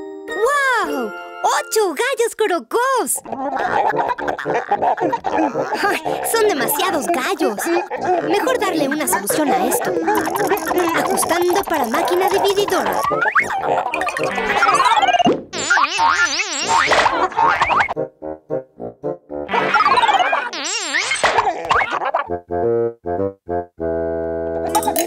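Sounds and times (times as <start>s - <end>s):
wobbling electronic warble: 10.0s - 18.0s, 19.5s - 21.9s
quick choppy beeps: 10.2s - 17.0s.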